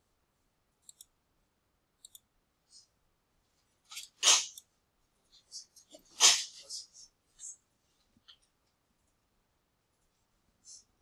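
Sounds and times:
computer mouse clicks: 0.8s - 1.1s, 2.0s - 2.3s.

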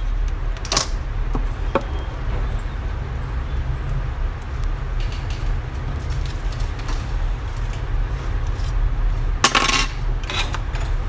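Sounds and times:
small hard parts clinking: 9.4s - 11.0s.

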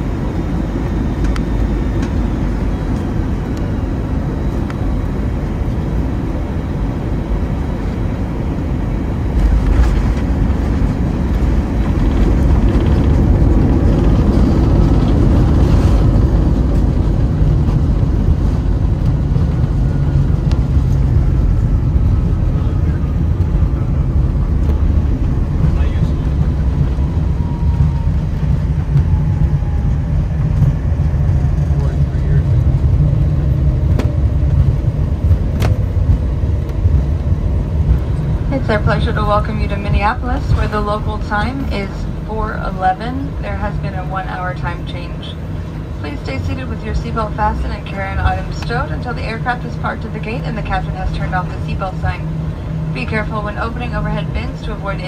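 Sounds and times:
jet engine and runway rumble: 0.0s - 55.0s.

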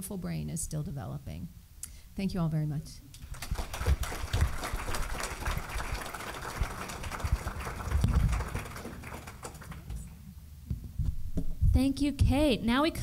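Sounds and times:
audience applauding: 3.2s - 10.2s.

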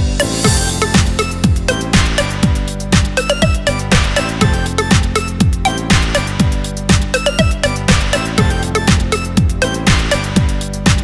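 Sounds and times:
electronic dance music: 0.0s - 11.0s.

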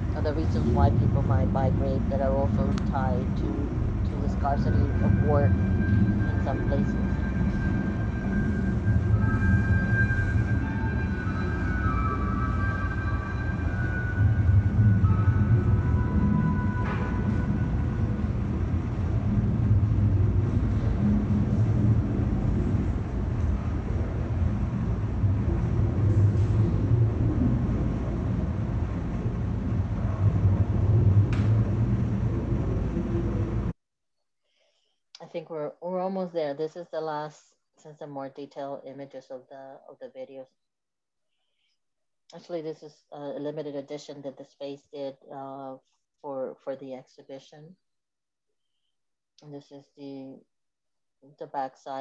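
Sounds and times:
steady low rumble: 0.0s - 33.8s
faint held high tones: 4.3s - 18.3s.

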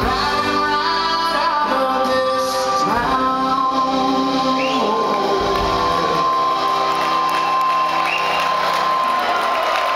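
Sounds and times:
crowd cheering and whooping: 4.8s - 9.9s.

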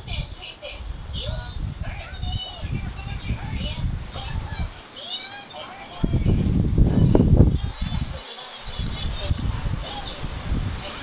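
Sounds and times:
gusty wind buffeting microphone: 0.0s - 11.0s
small birds chirping: 0.2s - 11.0s.

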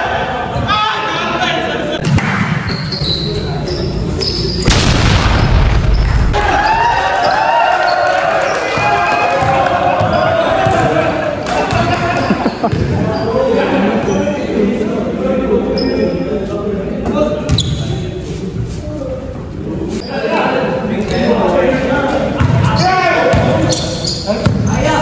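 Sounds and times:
players calling out: 5.9s - 14.2s.

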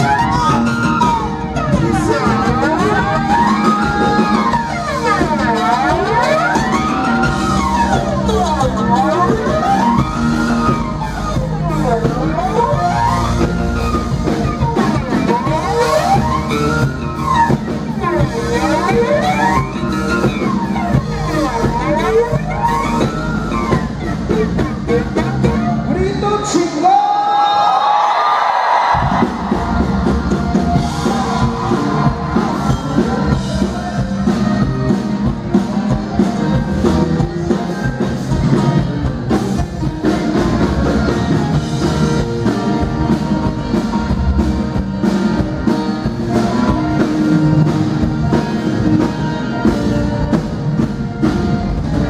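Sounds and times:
person singing: 0.0s - 7.5s
live band music through speakers: 0.0s - 52.0s.

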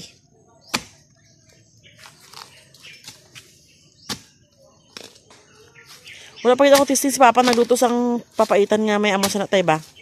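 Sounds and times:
dry bamboo leaves rustling: 1.9s - 3.5s.

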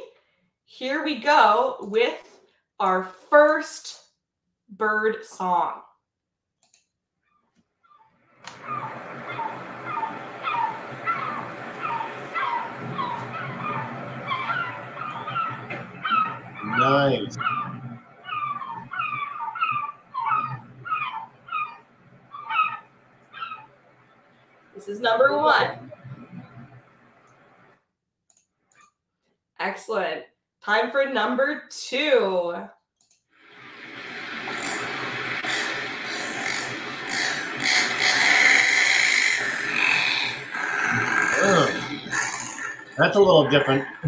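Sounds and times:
gull calling: 8.5s - 23.7s, 34.1s - 44.0s.

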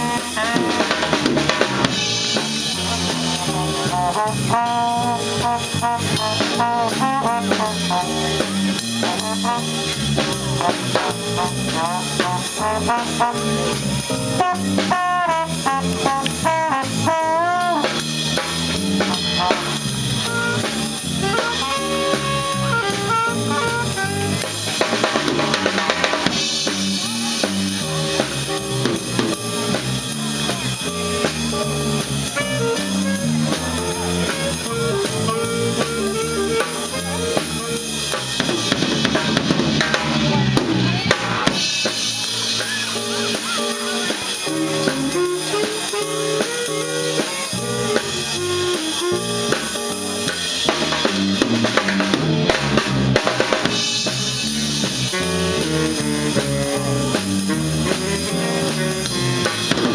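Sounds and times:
drum kit: 0.0s - 59.9s
jazz band playing: 0.0s - 59.9s.

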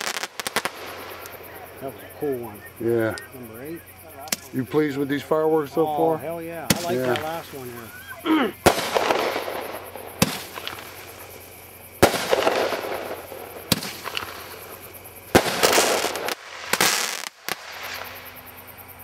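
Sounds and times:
fireworks bangs: 0.0s - 18.5s
hissing crackle: 0.0s - 19.0s.

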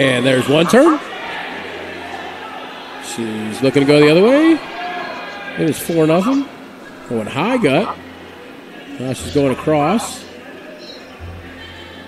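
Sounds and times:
faint background voices: 4.6s - 12.0s
low steady hum: 11.2s - 12.0s.

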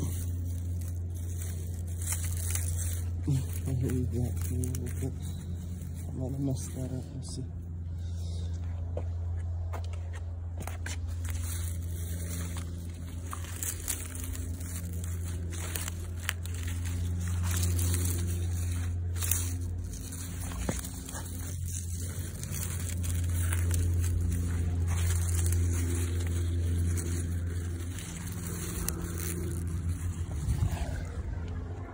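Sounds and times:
crackling leaves rustling: 0.0s - 8.5s, 10.5s - 31.9s
low engine-like drone: 0.0s - 31.9s.

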